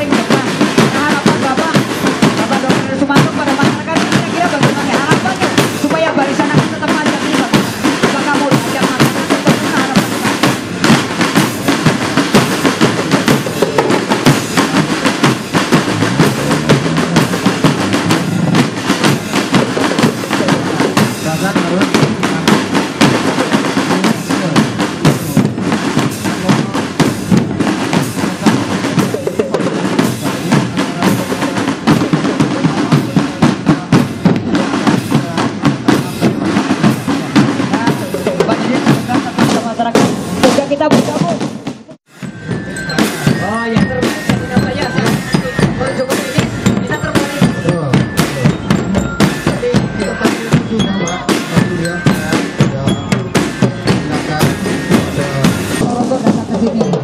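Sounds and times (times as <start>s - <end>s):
bass drums: 0.0s - 57.0s
snare drums: 0.0s - 57.0s.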